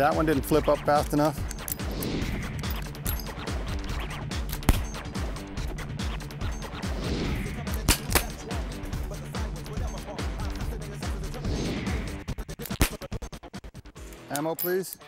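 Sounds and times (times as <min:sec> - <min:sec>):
background music with steady beat: 0:00.0 - 0:15.0
revolver shots: 0:07.7 - 0:08.6.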